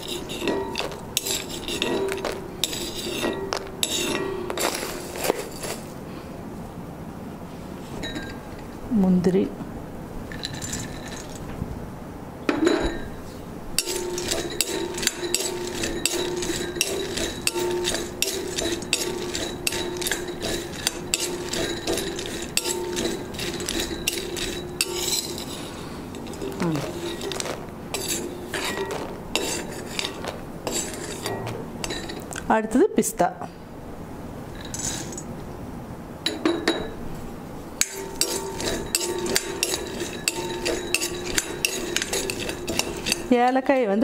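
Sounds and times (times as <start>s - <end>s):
spoon scraping a pan: 0.0s - 5.9s, 13.8s - 32.3s, 37.8s - 43.6s
steady low hum: 0.0s - 44.0s.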